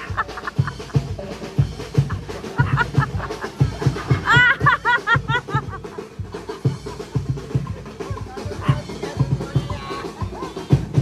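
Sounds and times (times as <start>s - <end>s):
drums beating a marching beat: 0.0s - 11.0s.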